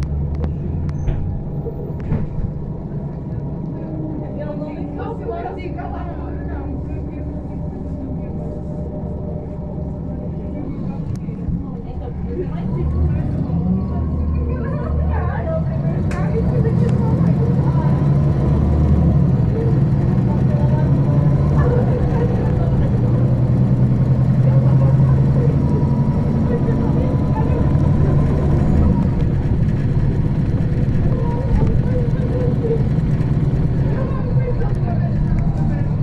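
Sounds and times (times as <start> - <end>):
bus engine droning: 0.0 - 36.0.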